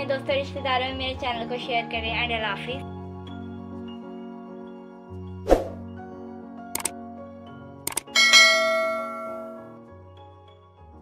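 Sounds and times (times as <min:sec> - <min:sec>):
soft background music: 0:00.0 - 0:11.0
click: 0:06.7 - 0:07.0, 0:07.9 - 0:08.1
bright bell chime: 0:08.2 - 0:09.8.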